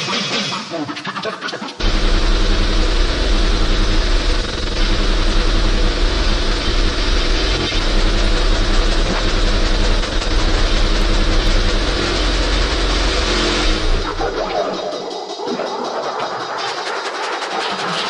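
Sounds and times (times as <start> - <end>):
distorted hardcore electronic music: 0.0 - 18.0.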